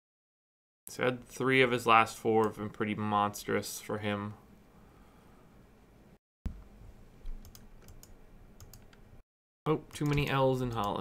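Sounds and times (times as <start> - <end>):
keyboard typing: 7.2 - 9.0, 9.9 - 11.0.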